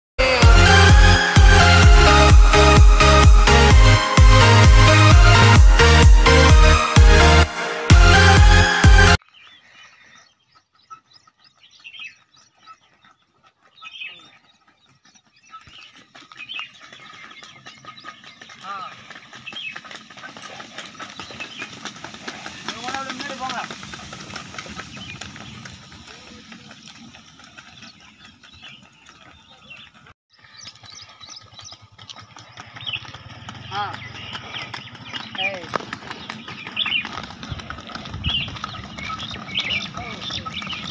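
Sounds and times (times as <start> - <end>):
hoof clops on asphalt: 10.0 - 40.9
cart rolling: 19.2 - 30.1, 30.7 - 40.9.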